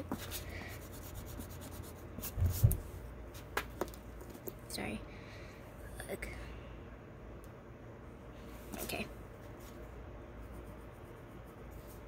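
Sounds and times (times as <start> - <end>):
pencil scratching on paper: 0.1 - 2.7.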